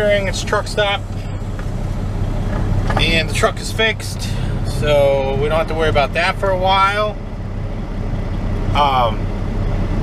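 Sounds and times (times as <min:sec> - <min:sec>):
diesel truck engine humming: 0:00.0 - 0:10.0.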